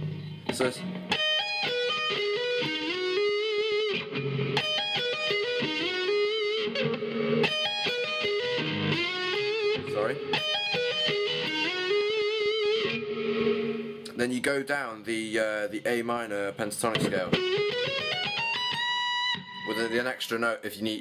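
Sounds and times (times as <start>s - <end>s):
distorted electric guitar: 0.0s - 14.2s, 16.5s - 20.2s.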